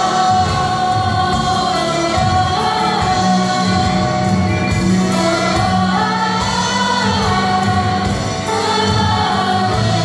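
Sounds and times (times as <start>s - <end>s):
band playing praise music: 0.0s - 10.0s
choir singing held notes: 0.0s - 10.0s.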